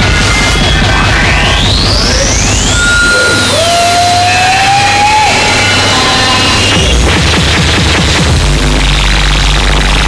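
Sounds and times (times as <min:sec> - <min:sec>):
gliding electronic tones: 0:00.0 - 0:03.8, 0:04.9 - 0:10.0
fast low pounding: 0:00.0 - 0:10.0
harsh noise music: 0:00.0 - 0:10.0.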